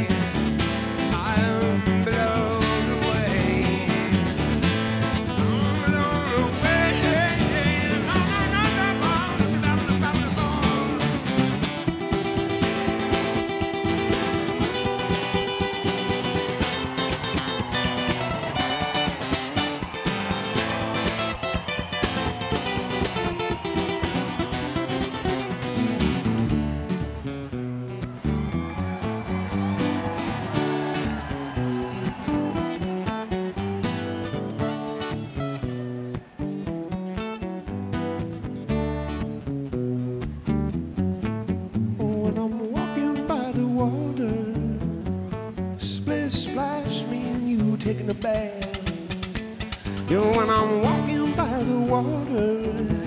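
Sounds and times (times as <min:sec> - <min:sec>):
acoustic guitars playing: 0:00.0 - 0:53.0.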